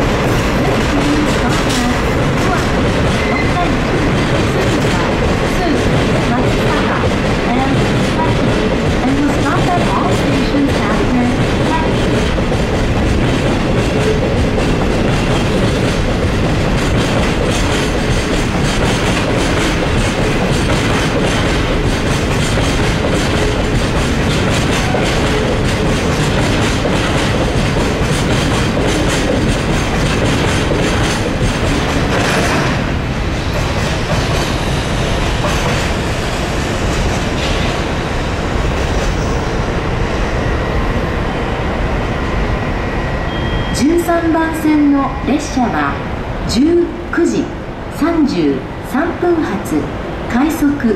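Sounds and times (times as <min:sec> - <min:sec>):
freight train wheels on rails: 0:00.0 - 0:50.9.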